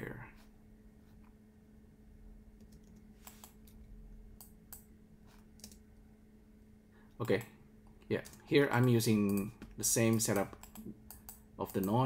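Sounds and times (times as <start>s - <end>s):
low steady hum: 0.0s - 12.0s
keyboard and mouse clicks: 2.6s - 4.9s, 5.6s - 5.8s, 8.2s - 12.0s.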